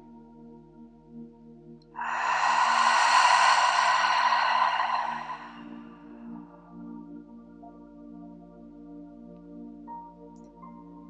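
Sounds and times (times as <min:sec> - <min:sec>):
ambient music drone: 0:00.0 - 0:09.8
deep breath out through mouth: 0:02.0 - 0:06.4.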